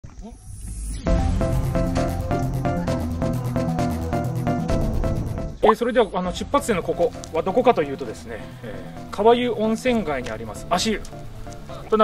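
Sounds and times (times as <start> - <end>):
background music with steady beat: 1.0 - 12.0.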